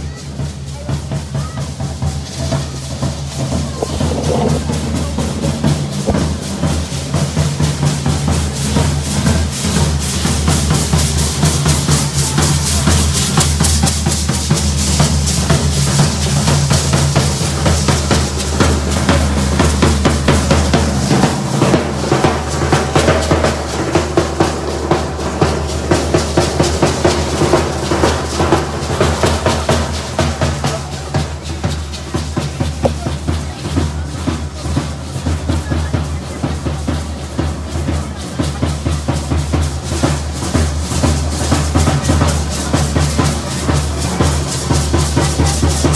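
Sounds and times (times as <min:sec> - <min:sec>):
bass drums beating: 0:00.0 - 0:45.9.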